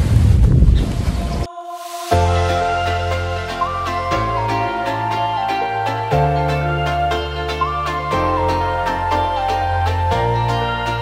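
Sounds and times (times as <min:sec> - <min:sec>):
background music held notes: 0:01.5 - 0:11.0.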